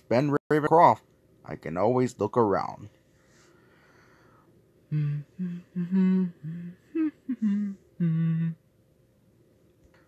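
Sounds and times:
person humming: 4.9s - 8.6s.

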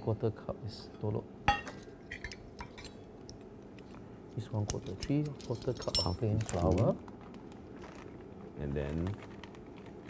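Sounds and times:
kitchen utensils clinking: 4.7s - 6.3s.

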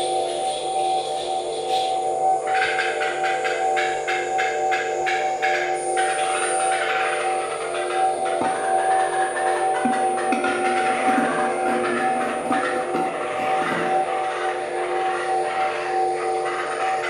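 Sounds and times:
electronic drone of held tones: 0.0s - 17.0s
noisy electronic pulsing: 0.0s - 17.0s.

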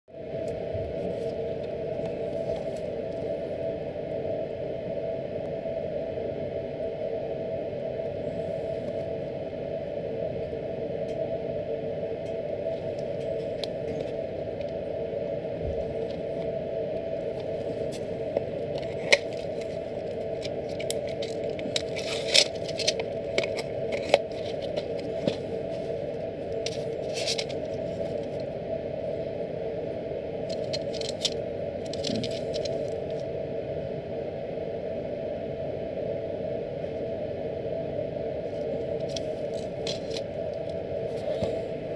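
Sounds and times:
steady hum: 0.1s - 41.9s
blister pack crackling: 17.4s - 28.4s, 30.4s - 33.2s, 39.0s - 40.8s.

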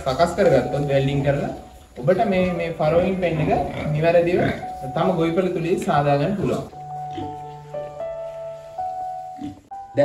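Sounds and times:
man speaking: 0.0s - 6.7s.

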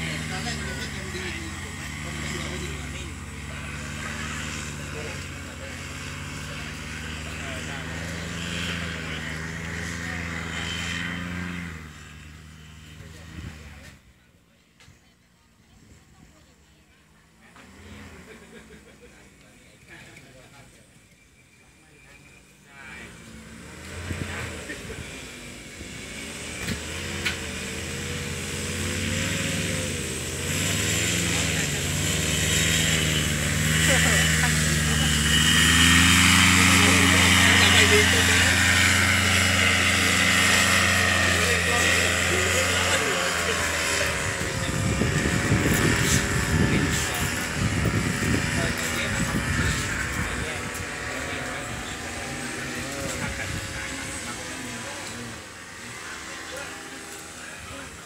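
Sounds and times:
paramotor engine and propeller: 0.0s - 58.0s.

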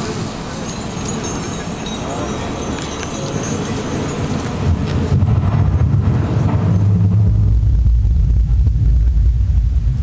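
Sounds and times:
crowd murmur: 0.0s - 6.7s
deep low rumble from speakers: 4.6s - 10.0s.

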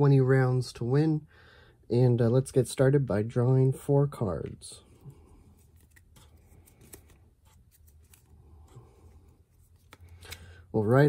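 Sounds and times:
cards clicking and sliding: 5.4s - 10.7s.

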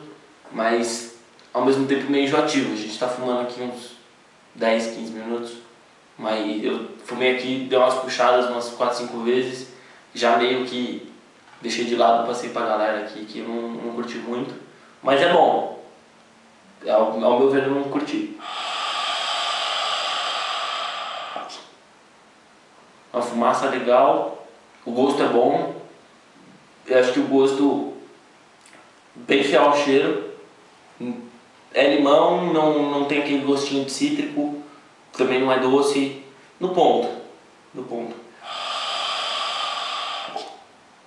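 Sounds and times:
hookah bubbling air rush: 18.4s - 21.8s, 38.3s - 40.8s.

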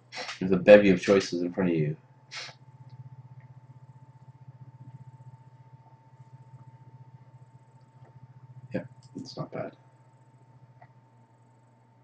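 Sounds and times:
low pulsing hum: 0.0s - 12.0s
faint thin steady tone: 0.4s - 12.0s.

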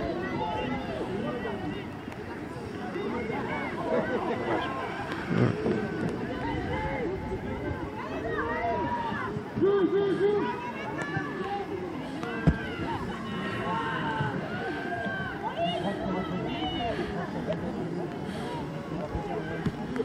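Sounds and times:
crowd shouting and calling: 0.0s - 20.0s.

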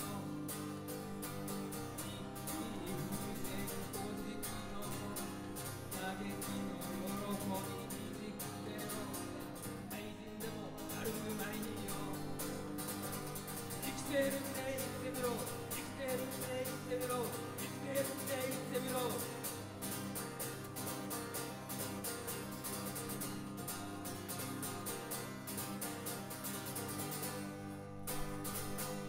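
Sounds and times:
acoustic guitar strumming: 0.0s - 29.0s.

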